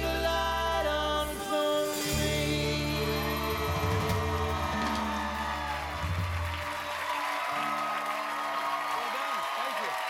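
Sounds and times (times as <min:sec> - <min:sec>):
live rock band: 0:00.0 - 0:08.2
audience applause: 0:04.1 - 0:10.0.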